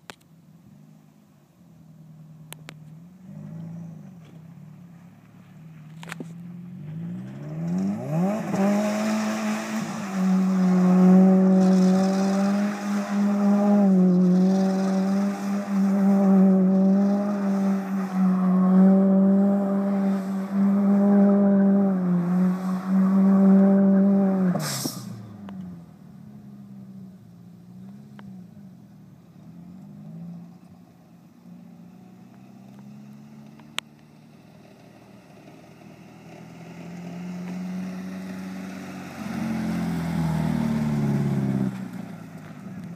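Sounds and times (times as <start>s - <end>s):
car engine revving high: 6.7s - 25.9s, 36.5s - 42.2s
spraying dirt hiss: 24.5s - 25.3s.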